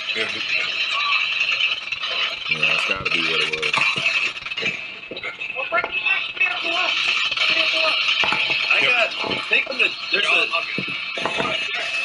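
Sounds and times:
person speaking indistinctly: 2.2s - 3.8s.

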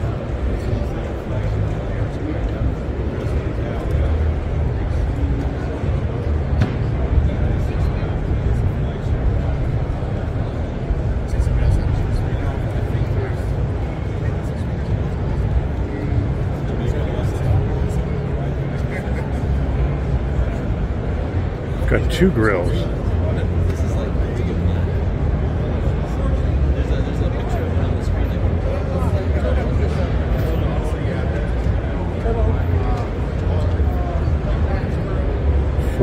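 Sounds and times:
many people talking: 0.0s - 36.0s.

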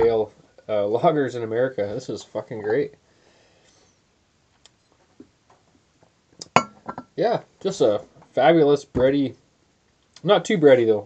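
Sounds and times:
glass bottle clinking on table: 6.5s - 7.1s.

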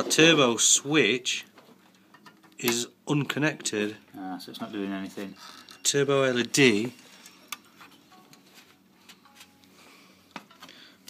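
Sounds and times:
faint clicks and taps of wires: 1.5s - 2.8s.

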